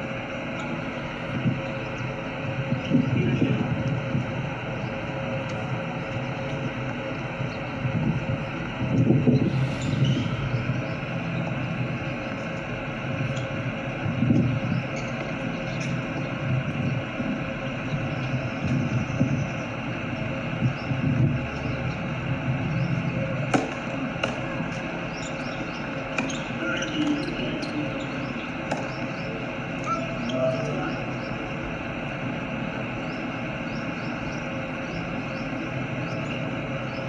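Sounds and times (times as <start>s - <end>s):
low outdoor rumble: 0.0s - 37.0s.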